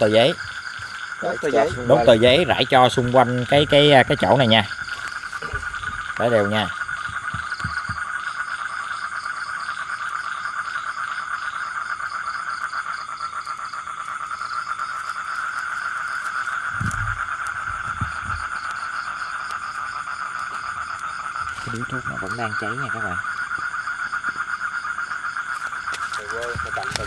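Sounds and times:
low thumps: 0.0 - 8.2, 16.8 - 18.6
frogs and crickets trilling: 0.0 - 27.0.

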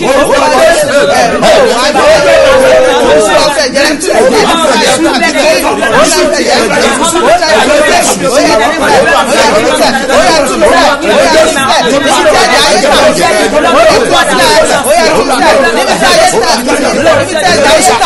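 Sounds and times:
voices praying aloud: 0.0 - 18.0.

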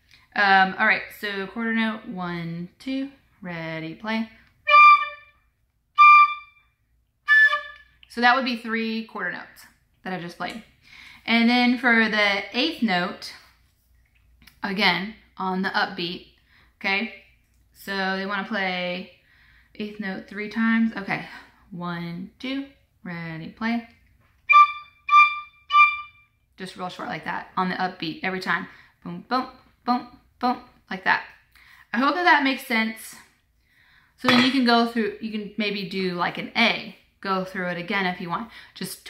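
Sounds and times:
tin whistle notes: 4.7 - 8.0, 24.5 - 26.3.

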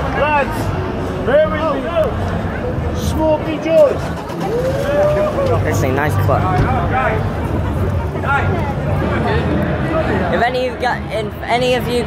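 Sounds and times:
crowd voices talking: 0.0 - 12.0.

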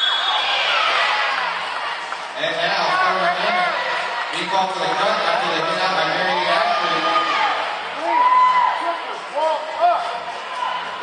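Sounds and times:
spectators shouting in echoing hall: 0.0 - 11.0.

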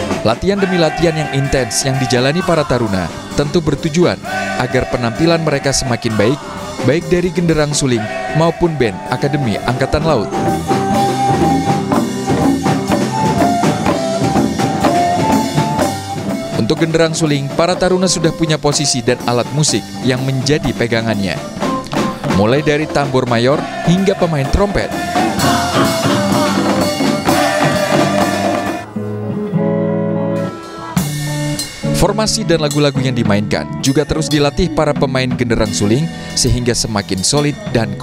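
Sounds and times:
drum kit beat: 0.0 - 28.9, 30.4 - 38.0
band playing: 0.0 - 38.0
hand drums beaten: 10.2 - 16.5, 21.5 - 28.8
melody of long held notes: 25.2 - 32.0.

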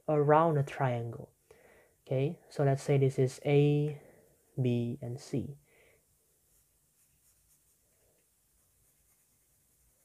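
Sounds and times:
pencil scratching on paper: 8.6 - 10.0.

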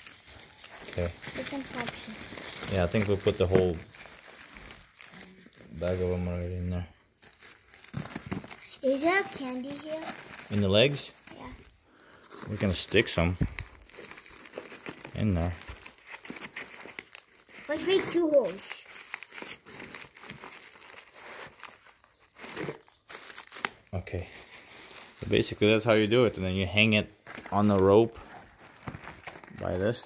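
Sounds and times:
paper crinkling: 0.0 - 6.6, 7.2 - 30.0
paper tearing: 0.6 - 6.3, 14.5 - 21.6.

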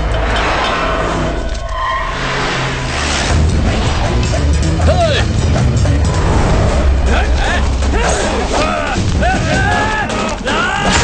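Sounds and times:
low rumble: 0.0 - 9.6
dramatic film score: 0.0 - 11.0
men shouting: 4.0 - 11.0.

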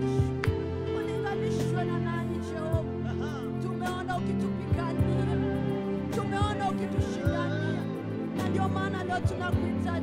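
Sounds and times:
sustained keyboard chords: 0.0 - 10.0
woman singing: 0.8 - 10.0.

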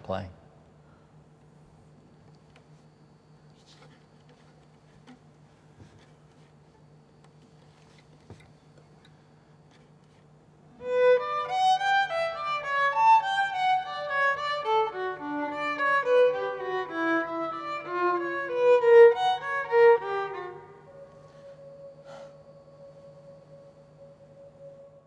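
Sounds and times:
solo violin melody: 10.8 - 21.2.

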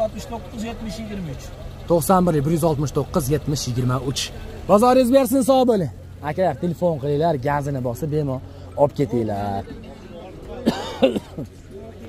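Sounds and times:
person clearing throat: 10.6 - 11.4.

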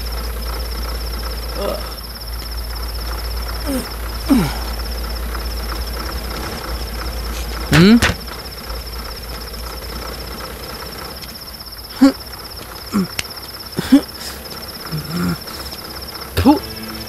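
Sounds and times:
crickets chirring: 0.0 - 17.0
man grunting: 1.6 - 2.0, 3.7 - 4.8, 12.0 - 12.2, 12.9 - 13.2, 13.8 - 15.8, 16.4 - 16.6.

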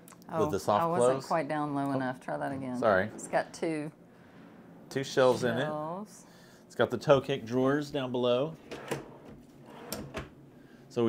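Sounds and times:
drawer sliding on runners: 8.6 - 10.3.

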